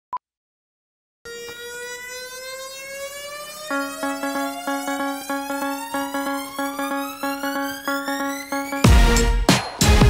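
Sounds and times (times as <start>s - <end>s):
synthesized rising tone: 1.3s - 9.3s
pulsing electronic beat: 3.7s - 10.0s.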